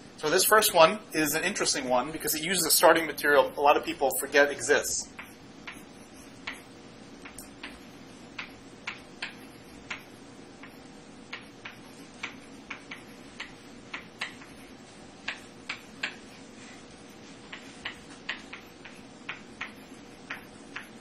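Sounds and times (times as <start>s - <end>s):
faint steady hum: 0.0s - 21.0s
chalk tapping on blackboard: 5.1s - 21.0s.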